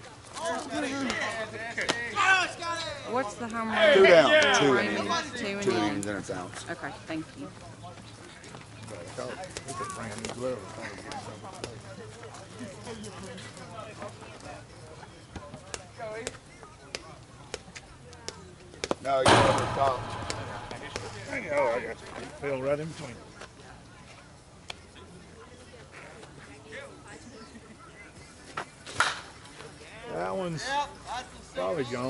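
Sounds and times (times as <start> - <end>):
faint voices of people: 0.0 - 22.4, 23.0 - 32.0
sharp knocks: 19.3 - 22.2.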